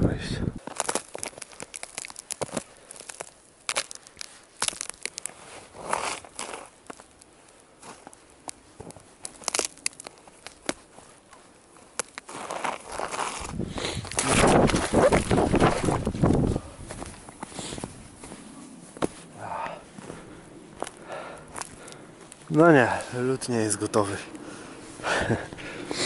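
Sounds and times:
foot breaking through ice: 0.6 - 8.1, 9.2 - 10.9, 11.9 - 16.5
ice crackling: 0.6 - 19.4, 20.1 - 26.0
footsteps crunching through snow: 0.6 - 26.0.

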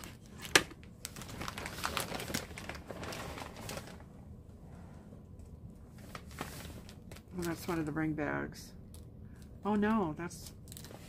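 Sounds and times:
plastic packaging crinkling: 0.0 - 4.2, 5.8 - 7.9, 10.4 - 11.0.

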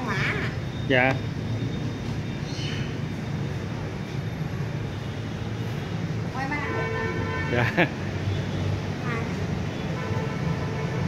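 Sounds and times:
distant street traffic rumble: 0.0 - 11.0.

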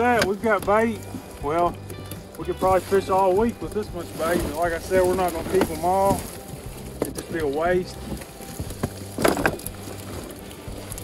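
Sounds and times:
fish flopping on boat deck: 0.0 - 11.0.

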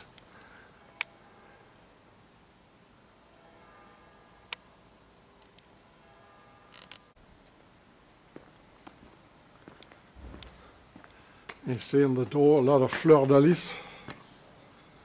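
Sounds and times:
faint steady tones: 0.0 - 15.0.

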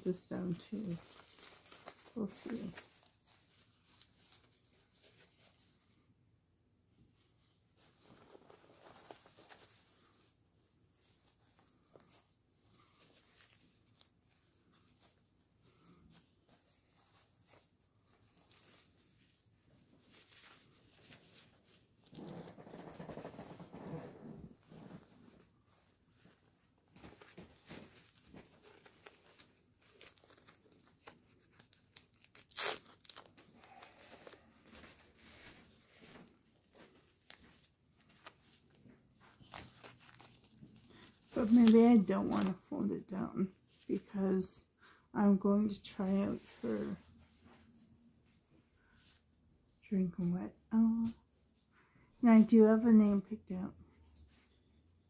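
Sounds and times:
diaper crinkling and rustling: 0.0 - 6.0, 7.1 - 44.1
fastening tab ripping: 27.7 - 34.4, 39.5 - 42.6.

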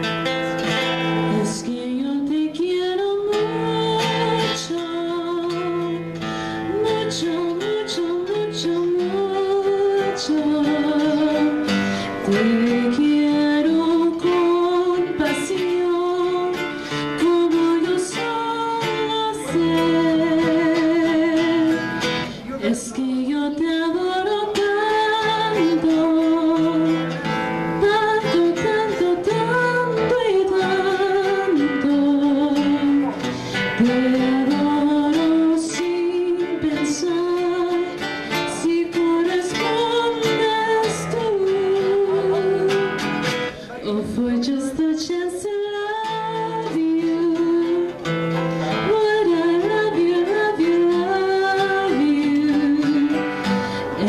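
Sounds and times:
woman singing with vibrato: 0.0 - 54.0.

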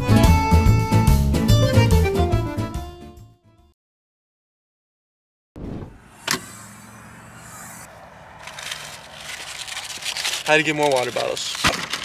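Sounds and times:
rustling of items: 8.4 - 12.0.

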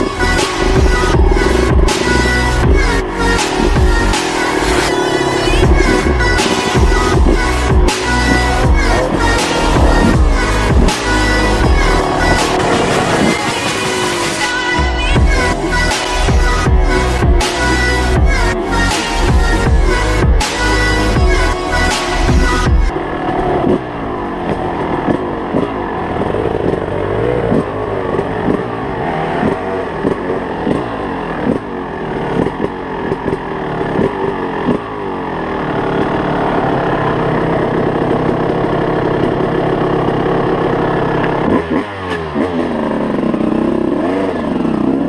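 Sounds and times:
dirt bike engine revving: 0.0 - 45.0.

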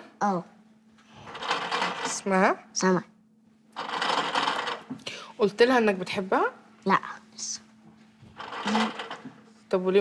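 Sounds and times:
machine running noise: 1.0 - 2.5, 3.7 - 5.2, 8.2 - 9.6.

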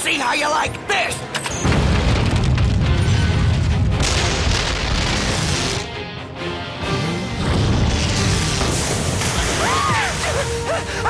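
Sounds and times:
heavy rumbling boom: 1.6 - 5.4
cartoon action music: 2.8 - 11.0.

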